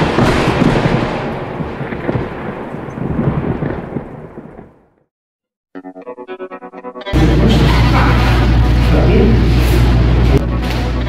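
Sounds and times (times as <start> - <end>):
thunder-like rumbling: 0.0 - 5.1.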